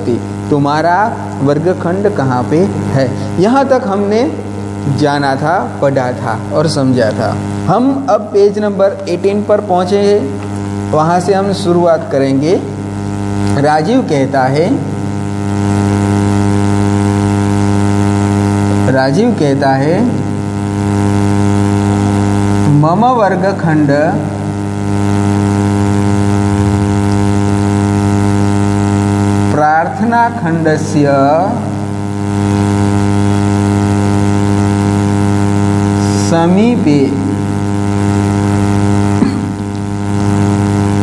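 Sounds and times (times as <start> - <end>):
man talking: 0.0 - 12.8, 13.6 - 14.9, 18.9 - 20.3, 22.7 - 24.4, 29.5 - 31.8, 36.0 - 37.4
loud electrical hum: 0.0 - 41.0.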